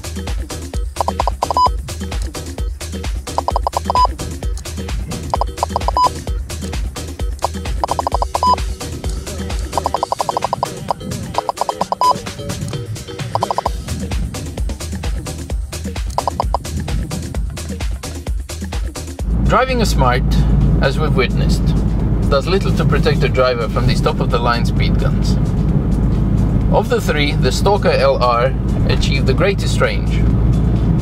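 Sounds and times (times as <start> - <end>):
electronic music with steady beat: 0.0 - 12.6, 13.2 - 19.2
speed gun beeping: 1.0 - 1.8, 3.4 - 4.2, 5.3 - 6.2, 7.4 - 8.6, 9.7 - 12.2, 13.4 - 13.8, 16.2 - 16.6.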